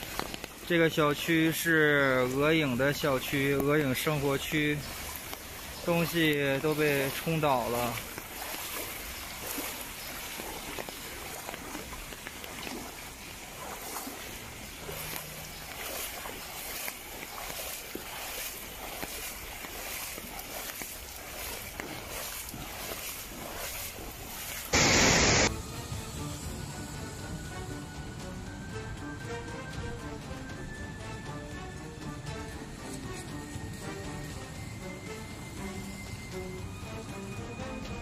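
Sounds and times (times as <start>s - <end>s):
floodwater running along street: 0.0s - 38.0s
loud burst of noise: 24.7s - 25.5s
heavy rain hissing: 24.7s - 27.0s
faint music: 25.5s - 38.0s.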